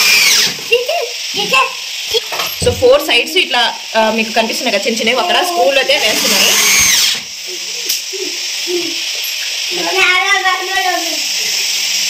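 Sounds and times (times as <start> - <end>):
cordless drill whining to a stop: 0.0 - 0.7, 6.0 - 7.3
steady hiss: 0.0 - 12.0.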